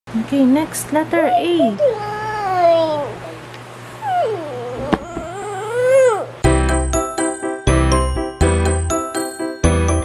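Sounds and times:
child whining cries: 1.3 - 6.4.

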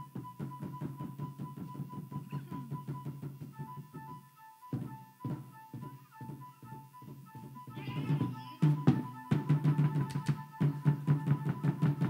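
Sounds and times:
fast even drum beat: 0.0 - 12.0
live band music: 0.0 - 12.0.

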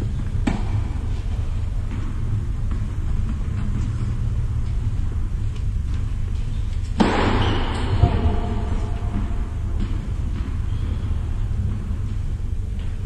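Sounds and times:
low rumble in large hall: 0.0 - 13.0.

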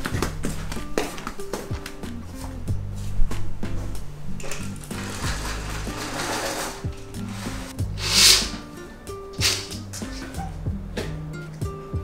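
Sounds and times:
blind and curtains rustling: 0.0 - 10.6
background music: 0.0 - 12.0.

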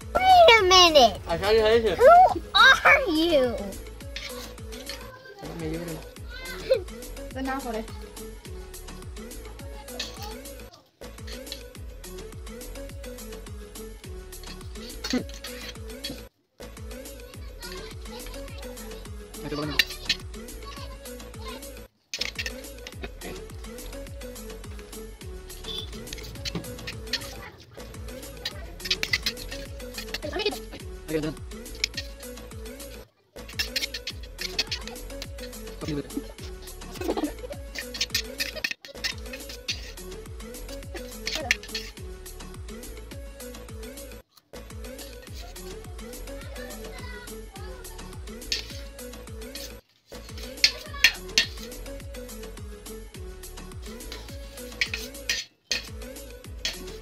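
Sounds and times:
music with bass beat: 5.4 - 21.6, 22.3 - 57.0
spoons clinking on metal plates: 9.9 - 10.4, 22.2 - 23.2, 25.6 - 30.8, 31.7 - 32.2, 32.9 - 40.0, 40.6 - 42.0, 48.4 - 48.9, 49.5 - 51.8, 54.0 - 56.0, 56.6 - 57.0.

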